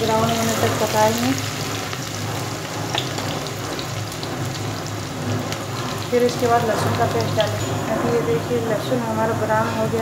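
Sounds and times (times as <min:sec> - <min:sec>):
onion frying in hot oil: 0:00.0 - 0:10.0.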